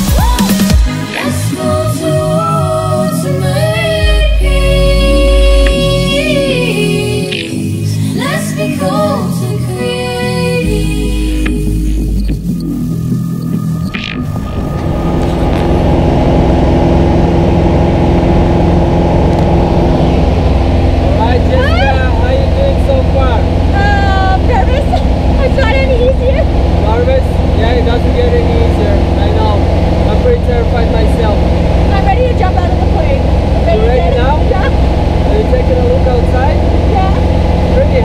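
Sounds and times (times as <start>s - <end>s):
voices: 0.0s - 16.7s, 19.5s - 38.0s
light aircraft engine drone: 1.1s - 38.0s.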